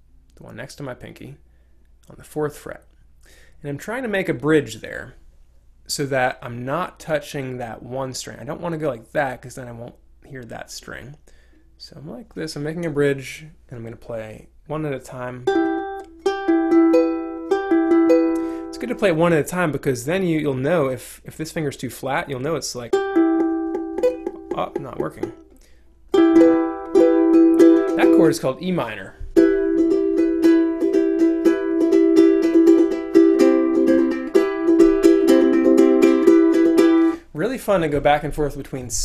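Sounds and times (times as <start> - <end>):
ukulele strings plucked: 15.5 - 19.2, 22.9 - 37.2
man's voice: 18.7 - 23.0, 24.5 - 25.4, 28.0 - 29.2, 37.3 - 39.0.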